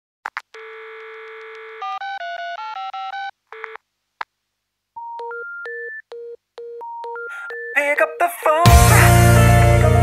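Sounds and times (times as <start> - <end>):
buzzing dial tone: 0.5 - 3.8
touch-tone keypad beeps: 5.0 - 7.8.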